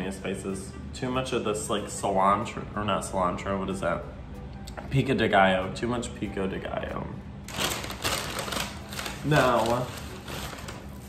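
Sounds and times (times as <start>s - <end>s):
paper bag rustling: 7.5s - 11.0s.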